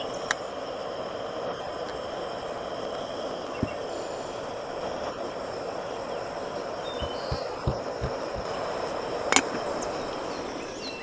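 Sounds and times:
steady background hiss: 0.0 - 11.0
soft low thumps: 7.0 - 8.5.

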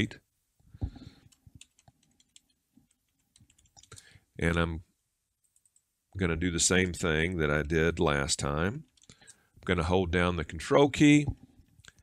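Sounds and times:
computer mouse clicking: 1.3 - 4.0.

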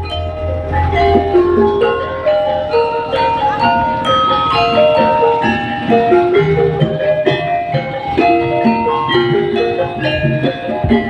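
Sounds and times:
gamelan metallophones ringing: 0.0 - 11.0.

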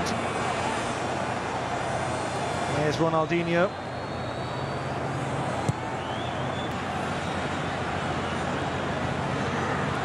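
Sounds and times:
stadium crowd voices: 0.0 - 10.0.

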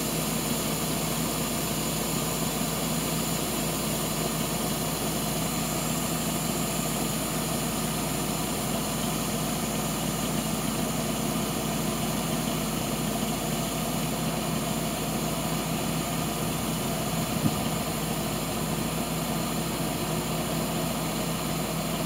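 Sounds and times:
truck engine idling: 0.0 - 22.0.

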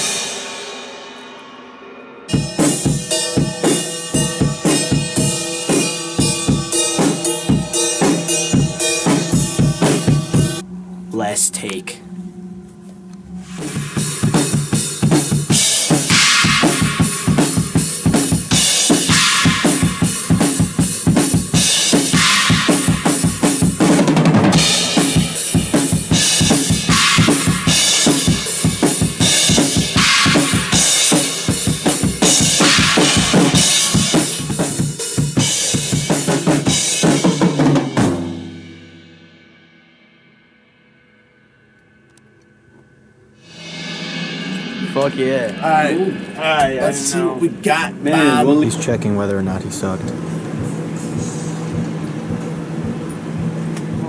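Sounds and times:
cymbal wash: 0.0 - 54.0
bass drum and snare strokes: 13.4 - 38.8, 48.7 - 54.0.

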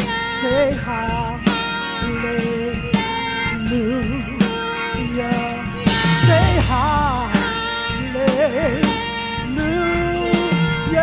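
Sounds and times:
drum kit with cymbal hits: 0.0 - 11.0
organ: 0.0 - 11.0
woman singing: 0.0 - 11.0.

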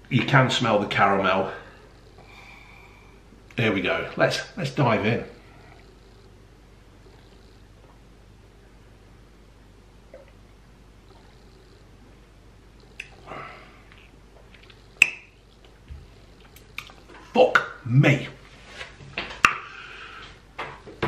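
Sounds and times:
short breath: 19.6 - 20.4.

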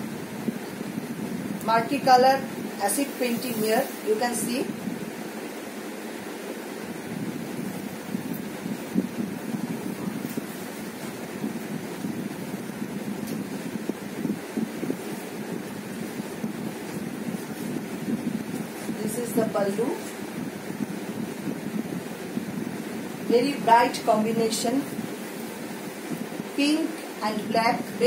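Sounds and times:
steady rushing hiss: 0.0 - 28.0.

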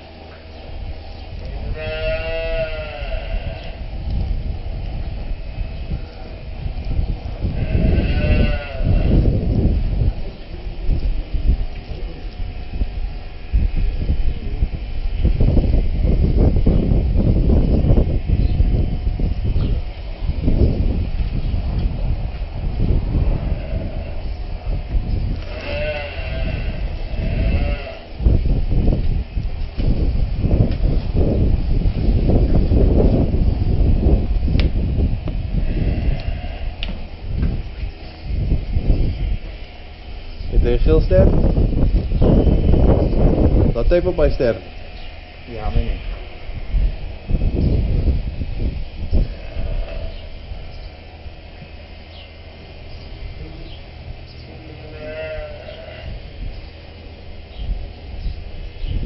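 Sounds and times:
cows mooing: 1.7 - 3.8, 7.4 - 9.3, 25.4 - 28.1, 54.0 - 56.3.

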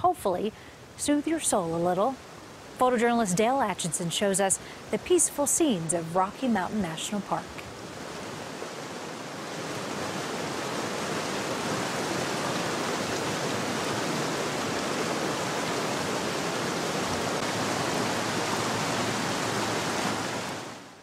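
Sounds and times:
stream rushing over rocks: 1.3 - 21.0.

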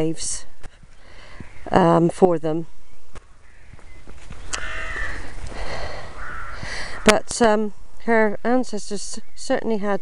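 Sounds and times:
crow cawing: 3.3 - 3.9, 4.5 - 7.1.

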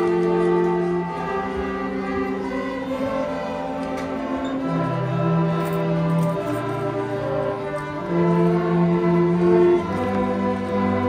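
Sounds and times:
string orchestra playing held chords: 0.0 - 11.0.

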